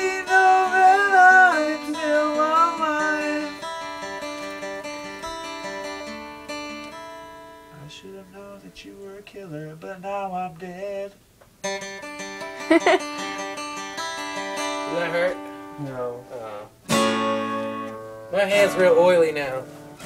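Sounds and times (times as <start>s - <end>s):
man singing: 0.0s - 3.6s, 7.8s - 11.2s
acoustic guitar playing: 0.0s - 20.0s.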